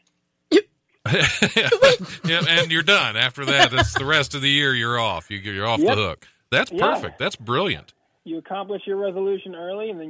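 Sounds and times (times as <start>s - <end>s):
short vocal burst: 1.1s - 4.2s
people laughing: 1.1s - 6.0s.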